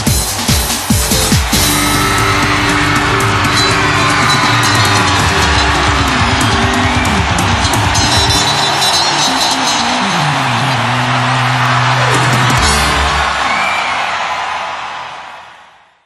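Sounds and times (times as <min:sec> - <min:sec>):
bass guitar: 0:01.0 - 0:13.5
held backing: 0:01.5 - 0:13.5.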